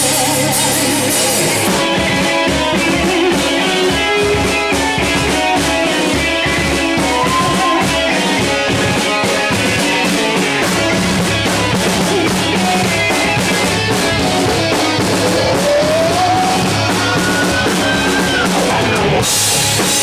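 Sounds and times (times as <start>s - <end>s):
drum kit beat: 0.0s - 20.0s
electric guitars: 0.0s - 20.0s.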